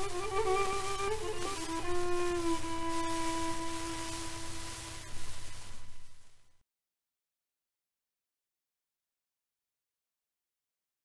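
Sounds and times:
solo violin note: 0.0 - 6.4
record surface hiss: 0.0 - 6.6.

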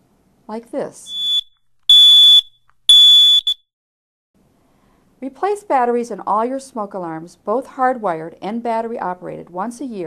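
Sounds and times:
short alarm blip: 1.1 - 3.6
smoke alarm beeping: 1.1 - 3.6.

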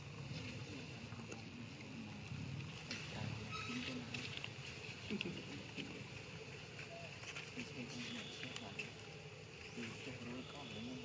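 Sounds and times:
faint low murmuring: 0.0 - 11.0.

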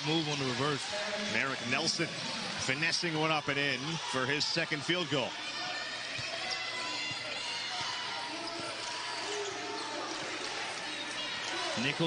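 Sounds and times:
commentator speaking: 0.0 - 5.3
faint voices: 0.0 - 12.0.

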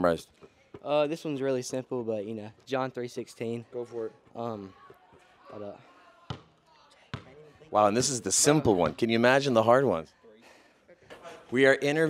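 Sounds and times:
basketball bouncing on concrete: 6.3 - 7.7.

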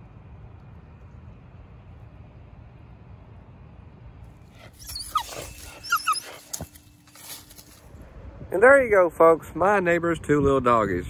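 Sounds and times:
dog whining: 4.6 - 6.9.

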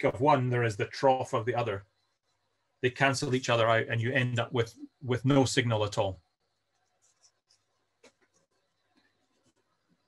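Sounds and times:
man speaking: 0.0 - 1.8, 2.8 - 6.2.

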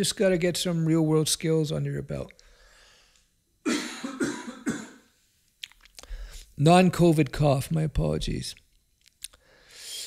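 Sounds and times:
man coughing: 3.7 - 5.1.

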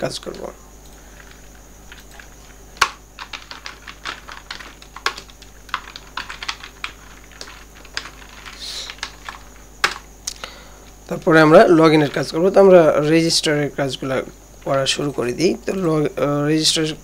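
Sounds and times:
computer keyboard typing: 1.2 - 10.1.

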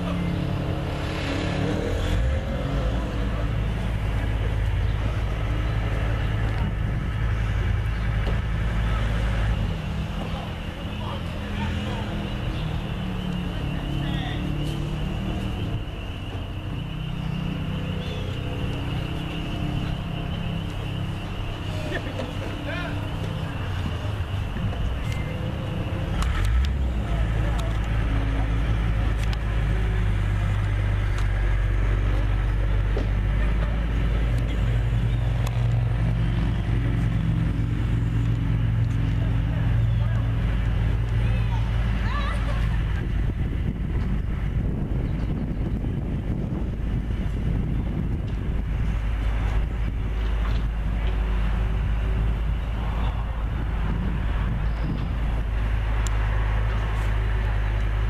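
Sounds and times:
people talking: 0.0 - 0.5, 8.7 - 16.5, 17.9 - 30.8, 38.8 - 43.6
large engine idling: 3.0 - 58.0.

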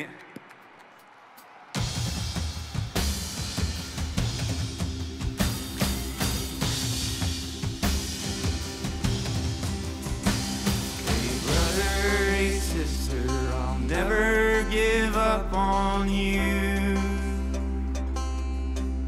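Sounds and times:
drum kit beat: 1.8 - 14.1
live band playing folk-rock: 3.0 - 17.2
person singing: 11.0 - 17.7.

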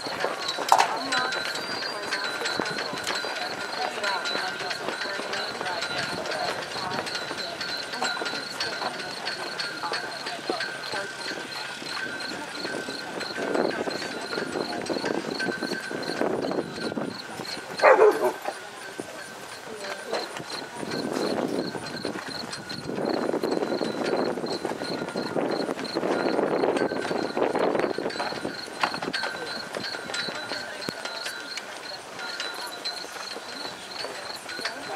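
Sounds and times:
spectators chattering: 0.0 - 34.9.

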